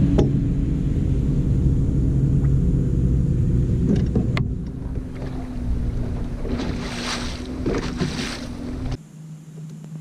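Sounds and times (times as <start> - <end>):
wind buffeting microphone: 0.0 - 9.0
boat motor humming: 0.0 - 9.8.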